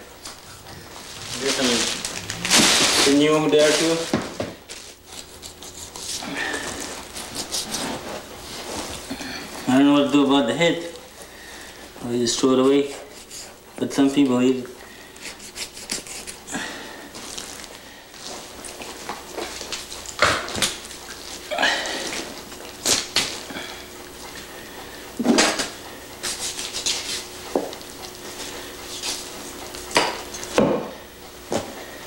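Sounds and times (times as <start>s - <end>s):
scrapes and rustles of skinning: 0.3s - 9.9s, 15.0s - 24.5s, 26.2s - 30.5s.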